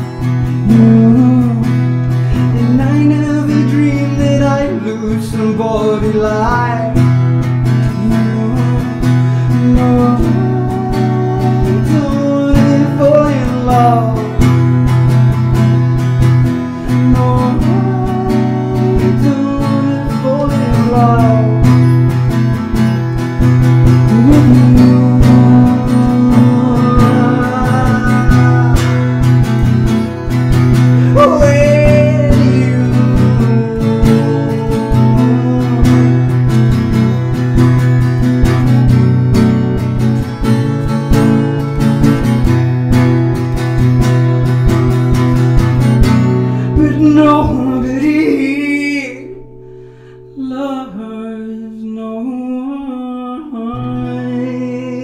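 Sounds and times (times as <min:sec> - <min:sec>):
man singing: 0:00.0 - 0:15.6, 0:16.6 - 0:22.6, 0:23.4 - 0:39.0, 0:44.1 - 0:55.0
acoustic guitar strumming: 0:00.0 - 0:55.0.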